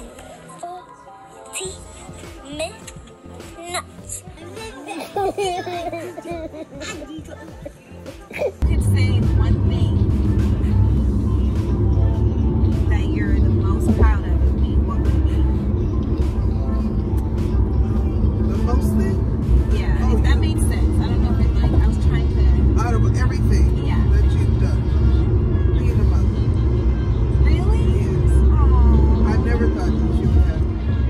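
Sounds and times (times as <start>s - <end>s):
car road and engine noise: 0.0s - 31.0s
music with singing voice: 0.0s - 31.0s.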